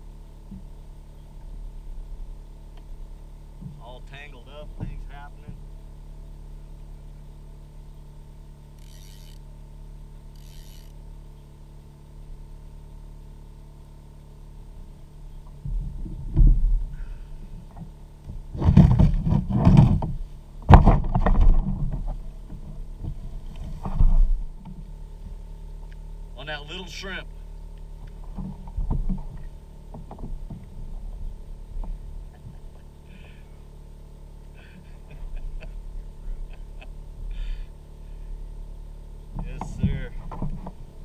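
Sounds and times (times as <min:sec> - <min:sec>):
steady low hum: 0:00.0 - 0:41.0
bumps and knocks on kayak hull: 0:04.7 - 0:05.6, 0:15.5 - 0:16.8, 0:17.6 - 0:24.9, 0:28.0 - 0:32.5, 0:39.3 - 0:40.9.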